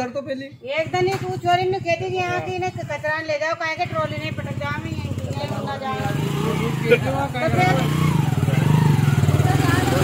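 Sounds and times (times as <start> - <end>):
engine idling: 0.0 - 10.0.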